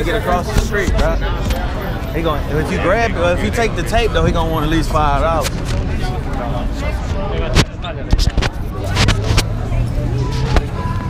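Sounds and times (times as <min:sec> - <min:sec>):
crowd voices: 0:00.0 - 0:11.0
vehicle engine humming: 0:00.0 - 0:11.0.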